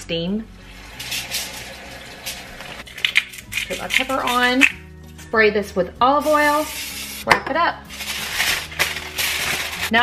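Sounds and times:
running water hissing: 0.7s - 2.8s, 6.3s - 7.2s.

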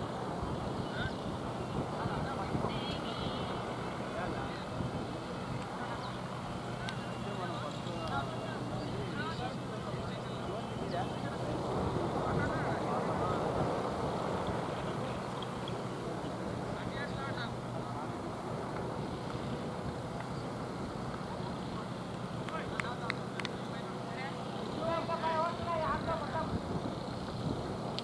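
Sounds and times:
wind on microphone: 0.0s - 7.2s, 8.2s - 17.0s, 24.9s - 28.0s
distant voices: 0.0s - 28.0s
wavering call: 2.7s - 3.8s.

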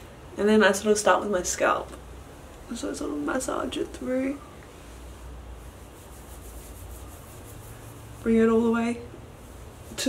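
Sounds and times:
rubbing and scratching oiled hair: 2.6s - 10.0s.

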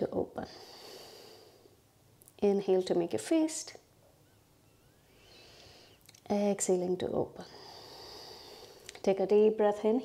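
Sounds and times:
soft high hiss: 0.0s - 10.0s
faint high chirps: 4.1s - 5.6s.

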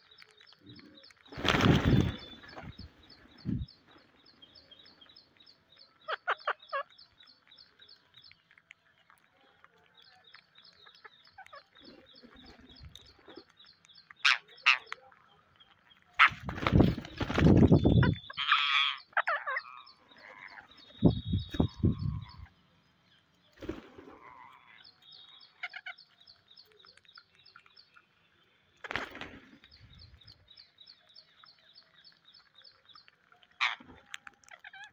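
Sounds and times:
wings fluttering: 1.2s - 4.1s, 16.2s - 18.6s, 23.5s - 24.4s, 28.8s - 30.4s
parakeets shrill calls: 6.0s - 6.9s, 16.2s - 22.5s, 33.6s - 33.8s.

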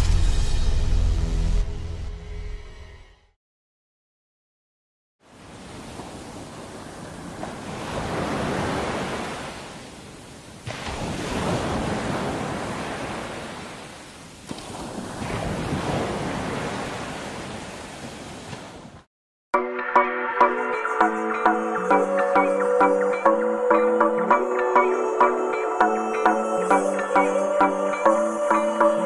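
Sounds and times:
ocean surf washing onto beach: 5.3s - 19.1s.

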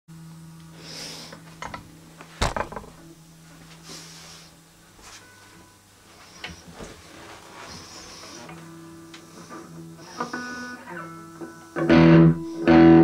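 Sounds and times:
electric guitar picked quietly: 2.9s - 13.0s
loud strummed guitar chord: 9.9s - 13.0s.

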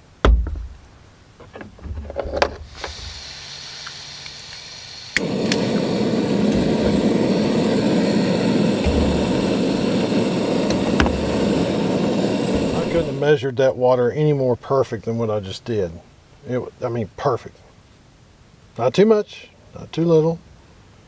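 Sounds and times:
gas burner roaring: 2.1s - 13.4s
gas hissing: 2.2s - 13.4s
stove igniter click: 2.8s - 13.2s.

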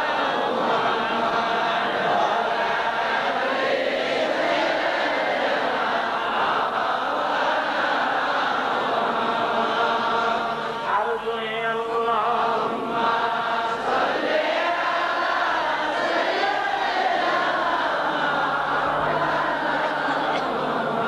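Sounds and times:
crowd of men chanting: 0.0s - 11.2s, 12.0s - 21.0s.

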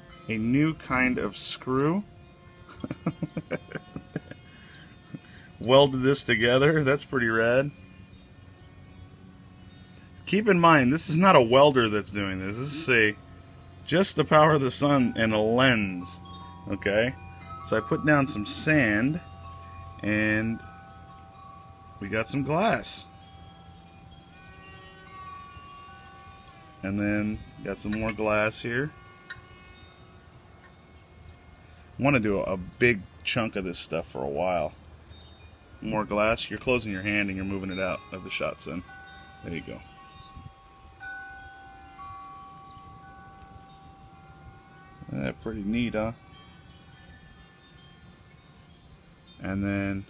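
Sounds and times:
bell-like ringing tones: 0.0s - 50.0s
man laughing: 2.7s - 4.5s.

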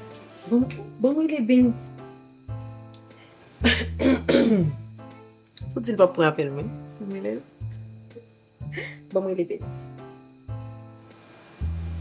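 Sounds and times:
background music with guitar: 0.0s - 12.0s
woman clearing her throat: 3.6s - 4.8s.

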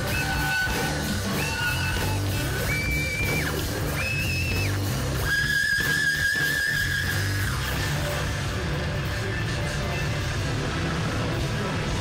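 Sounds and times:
heavy rock band playing live: 0.0s - 12.0s.

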